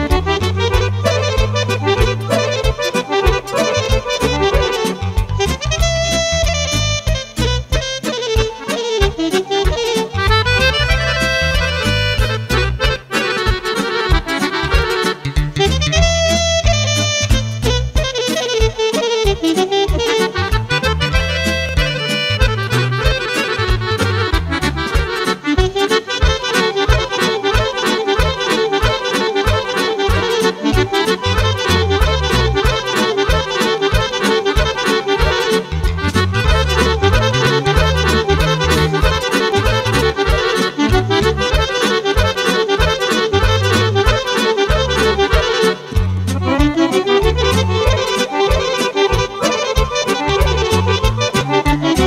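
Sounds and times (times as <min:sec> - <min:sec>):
accordion: 0:00.0 - 0:52.0
instrumental band music: 0:00.0 - 0:52.0.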